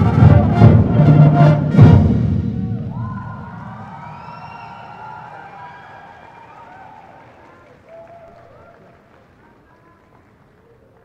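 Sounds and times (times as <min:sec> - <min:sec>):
audience cheering and whooping: 0:02.5 - 0:09.3.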